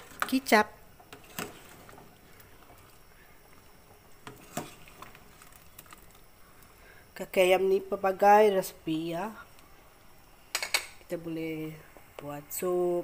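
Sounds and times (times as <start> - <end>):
soup bubbling in a pot: 0.0 - 7.1.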